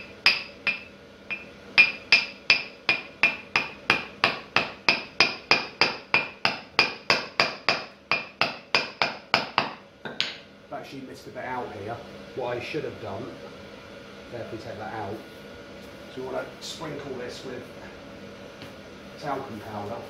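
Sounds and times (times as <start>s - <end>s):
hammer tapping metal: 0.0s - 10.5s.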